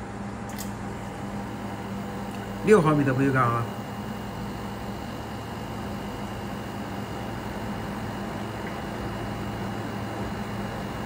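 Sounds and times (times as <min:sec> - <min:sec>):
workshop machinery humming: 0:00.0 - 0:11.0.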